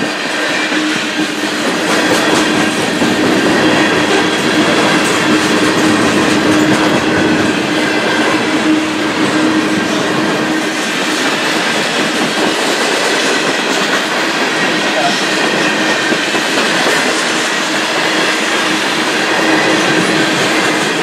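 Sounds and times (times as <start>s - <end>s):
train wheels rumbling on rails: 0.0s - 21.0s.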